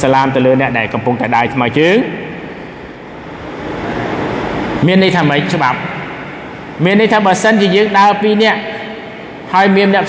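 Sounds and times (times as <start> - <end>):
steady rushing noise: 0.0 - 10.0.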